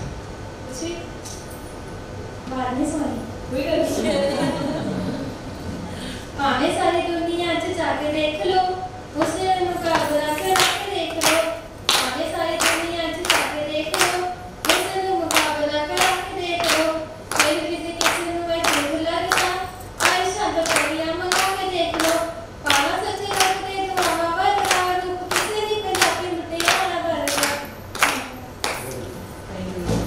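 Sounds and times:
women clapping along: 9.9s - 29.1s.

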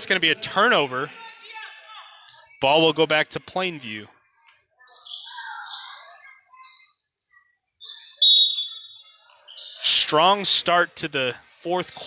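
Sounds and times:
shoes squeaking on hardwood court: 4.8s - 9.8s.

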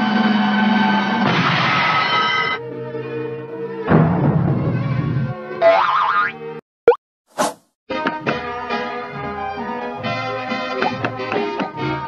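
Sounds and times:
orchestral cartoon music: 7.9s - 12.0s.

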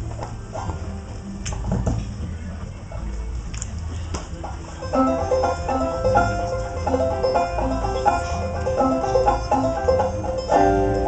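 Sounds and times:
banjo plucked softly: 3.9s - 11.0s.

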